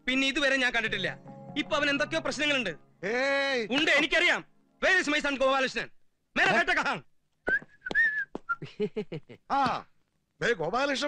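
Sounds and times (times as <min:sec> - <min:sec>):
person whistling high notes: 0:07.5 - 0:08.6.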